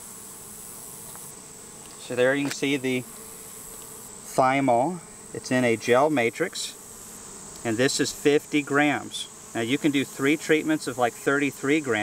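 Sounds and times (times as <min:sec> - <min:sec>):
honeybees humming: 0:00.0 - 0:12.0.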